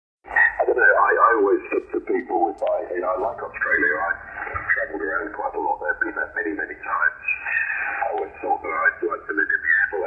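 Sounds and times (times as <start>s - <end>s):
man's voice over radio speaker: 0.3s - 10.0s.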